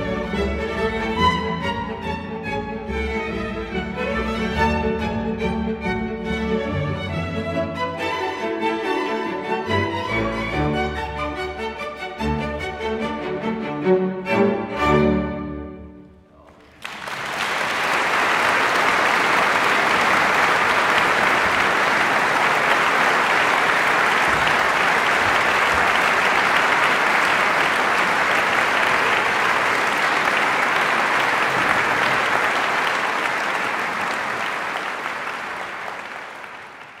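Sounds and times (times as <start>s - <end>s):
audience applauding: 16.4s - 37.0s.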